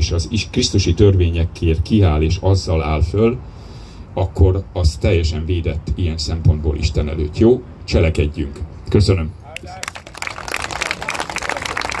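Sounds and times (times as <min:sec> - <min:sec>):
audience applauding: 0:09.6 - 0:12.0.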